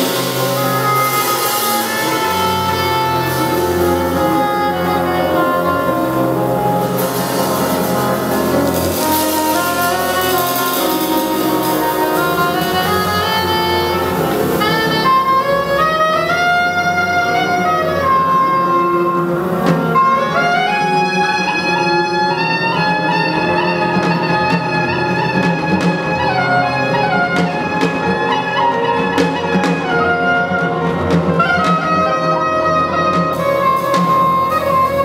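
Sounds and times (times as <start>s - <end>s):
double bass: 0.0s - 35.0s
drums: 0.0s - 35.0s
piano: 0.0s - 35.0s
saxophone: 0.0s - 35.0s
trumpet: 0.0s - 35.0s.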